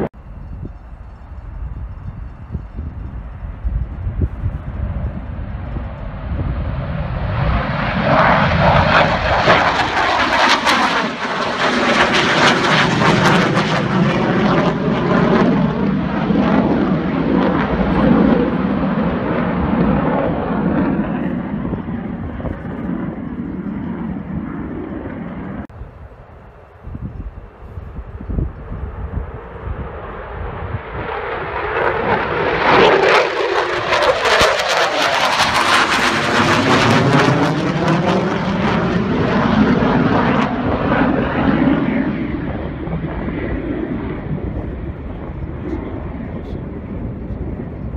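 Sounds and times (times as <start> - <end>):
fighter jets flying low overhead: 0.0 - 47.9.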